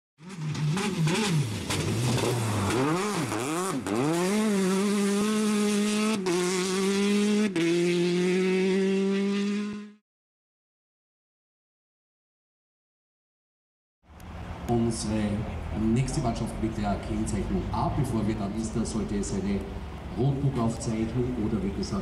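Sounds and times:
racing car engine revving: 0.2 - 10.0.

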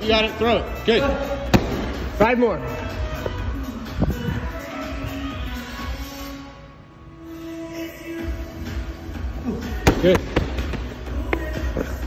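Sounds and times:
background music: 0.0 - 12.0
medicine ball landing knocks: 1.5 - 1.9.

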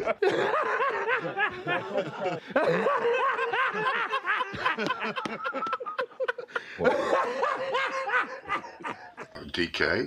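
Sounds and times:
man laughing hard: 0.0 - 9.4.

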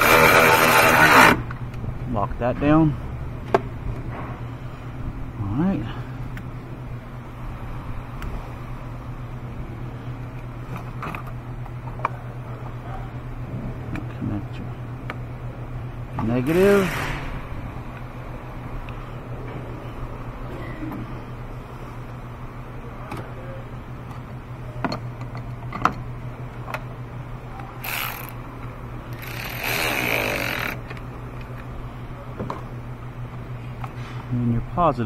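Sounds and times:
rapid ratchet clicking: 0.0 - 1.4, 27.8 - 28.4, 29.1 - 30.9
steady low hum: 0.0 - 35.0.

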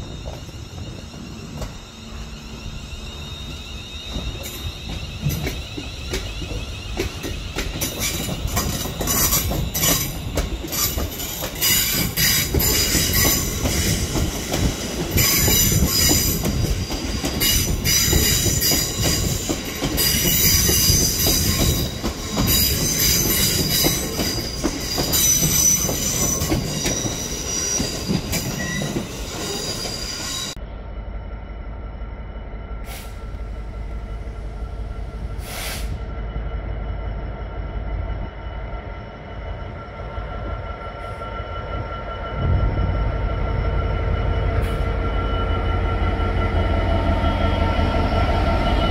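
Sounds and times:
train wheels squealing: 0.0 - 30.6, 32.4 - 48.9
diesel locomotive engine rumble: 0.0 - 48.9
train clicking over rail joints: 3.4 - 30.6.

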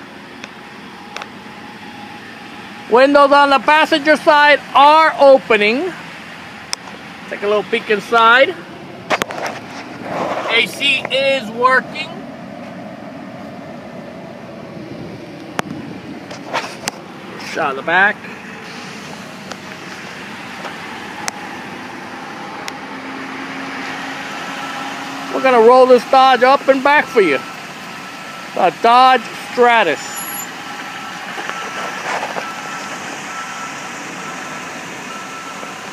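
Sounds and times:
car engine idling: 0.0 - 35.9
high electronic beep: 28.3 - 31.8.

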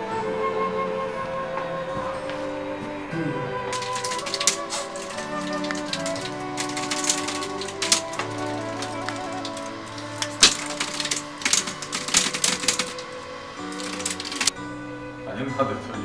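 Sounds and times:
background music sustained notes: 0.0 - 16.0
computer keyboard typing: 3.8 - 14.5.

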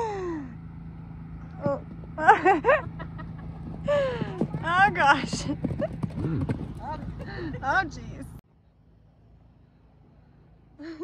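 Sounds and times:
person laughing: 2.2 - 4.4, 5.8 - 7.9, 10.8 - 11.0
hoofbeats on sandy ground: 2.8 - 8.0.

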